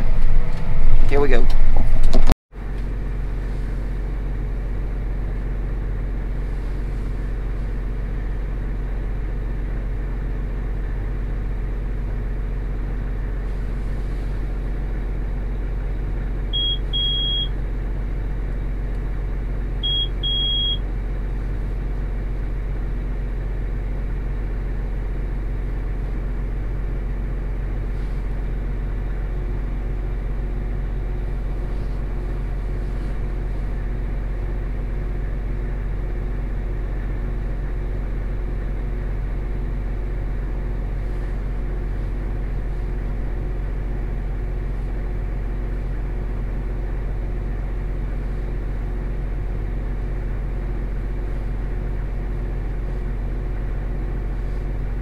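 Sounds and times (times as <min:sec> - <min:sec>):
tractor diesel engine drone: 0:00.0 - 0:55.0
short electronic beeps: 0:16.6 - 0:17.5, 0:19.8 - 0:20.8.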